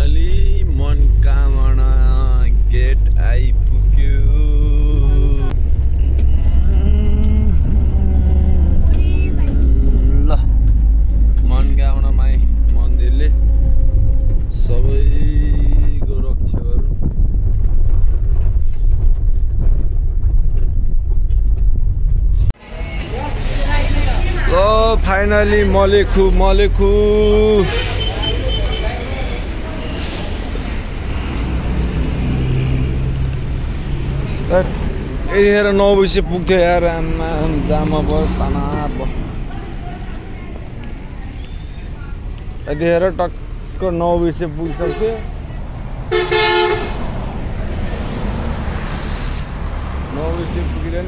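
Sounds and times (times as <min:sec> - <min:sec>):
people's voices: 0:00.0 - 0:13.6, 0:22.6 - 0:45.9
bus engine and road noise: 0:00.0 - 0:51.0.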